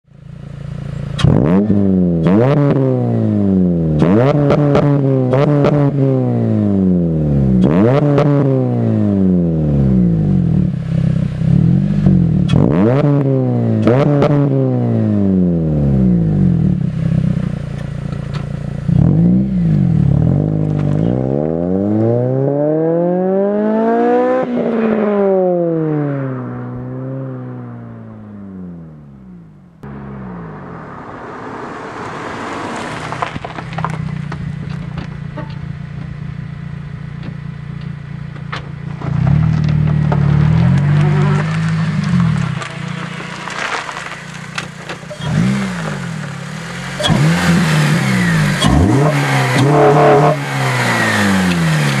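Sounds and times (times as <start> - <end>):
rough exhaust drone: 0.1 - 52.0
car engine revving: 0.2 - 52.0.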